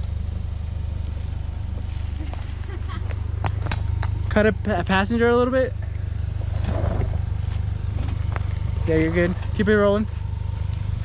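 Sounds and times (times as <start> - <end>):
truck engine at low revs: 0.0 - 11.0.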